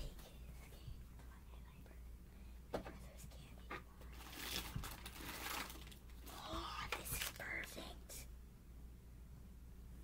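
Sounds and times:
boy whispering faintly: 0.0s - 2.1s, 2.8s - 4.2s, 6.3s - 8.3s
low room hum: 0.0s - 10.0s.

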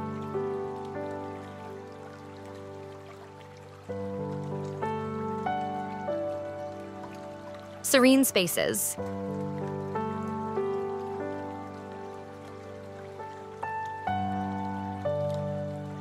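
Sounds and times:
soft music of sustained notes: 0.0s - 16.0s.

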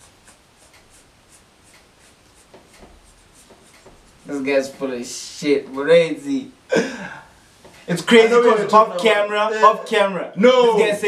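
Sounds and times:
breathy laughter: 6.7s - 7.3s.

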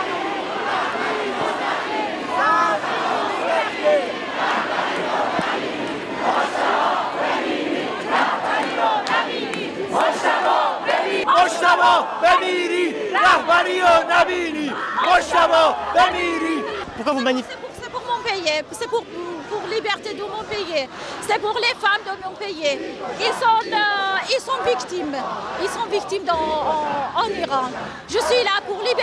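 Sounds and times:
crowd shouting: 0.0s - 29.0s.

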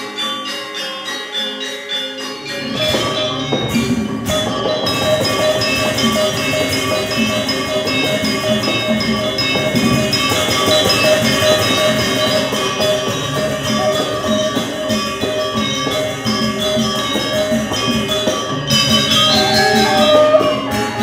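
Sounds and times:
metallophones ringing: 0.0s - 21.0s
gongs ringing: 2.4s - 21.0s
drumming: 2.8s - 21.0s.

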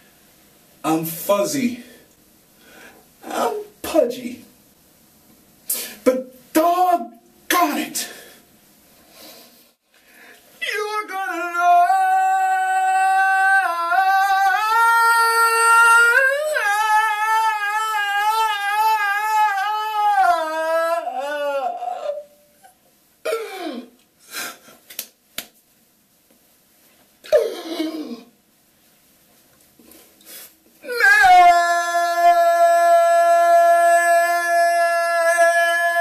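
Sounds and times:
man singing high held note: 10.6s - 22.4s, 30.8s - 36.0s.

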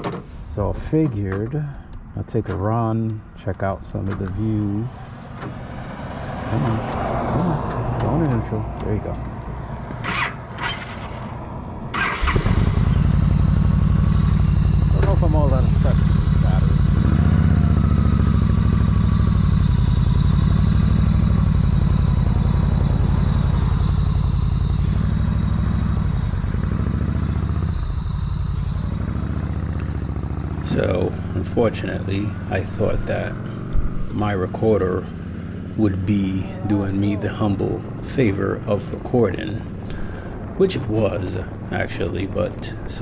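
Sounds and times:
motorcycle engine starting: 6.5s - 43.0s
motorcycle engine idling: 12.0s - 43.0s.

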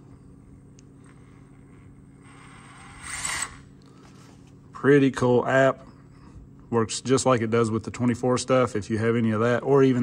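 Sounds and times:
electric motor whirring: 2.2s - 3.7s.

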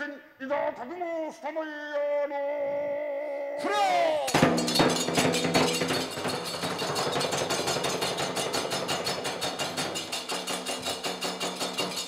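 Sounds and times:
taiko drum beat: 4.3s - 11.9s
small hand cymbals striking: 4.3s - 12.0s.

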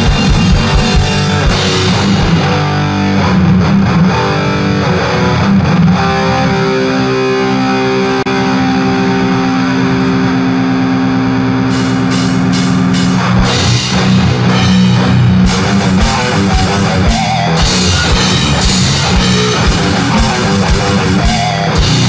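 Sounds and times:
drum and cymbal hits: 0.0s - 2.7s, 11.7s - 22.0s
distorted electric guitar chords: 0.0s - 22.0s.

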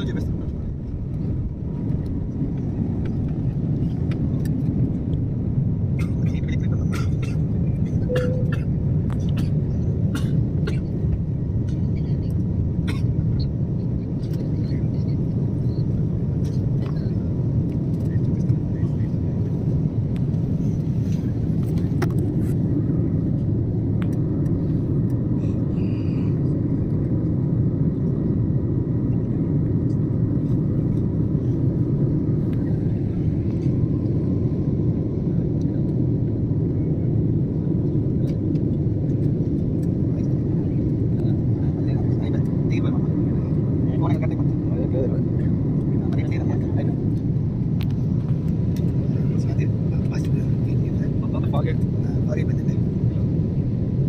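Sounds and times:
jet cabin engine roar: 0.0s - 54.0s.

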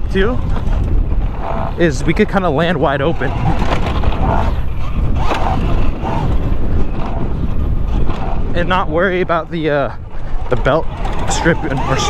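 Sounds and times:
tyre and chassis noise: 0.0s - 12.0s
wind rushing on microphone: 0.0s - 12.0s.

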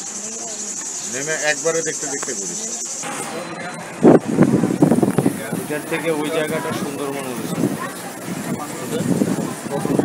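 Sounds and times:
cicadas buzzing: 0.0s - 10.0s.

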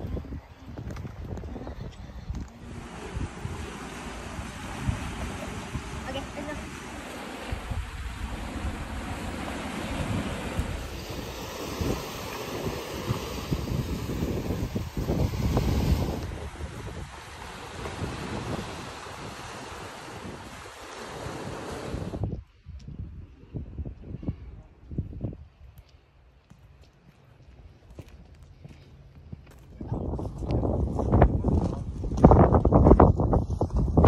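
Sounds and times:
wind buffeting microphone: 0.0s - 25.8s, 27.9s - 34.0s
waves washing against rocks: 2.6s - 22.2s.

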